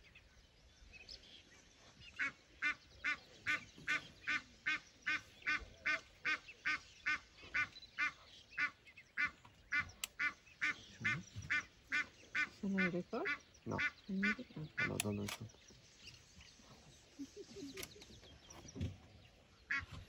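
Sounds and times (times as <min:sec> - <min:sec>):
duck honking: 0:02.2 - 0:15.1.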